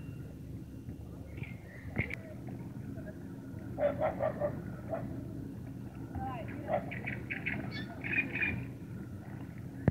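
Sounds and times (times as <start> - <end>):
bird calling scratchy notes: 6.9 - 8.7.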